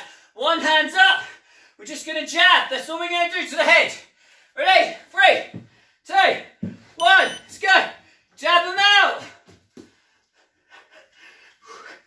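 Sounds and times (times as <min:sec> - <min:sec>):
man speaking: 0:04.6 - 0:09.3.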